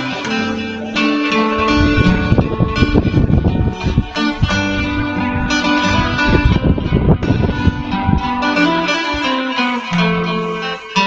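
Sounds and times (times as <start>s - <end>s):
fingerpicked acoustic guitar: 0.0s - 11.0s.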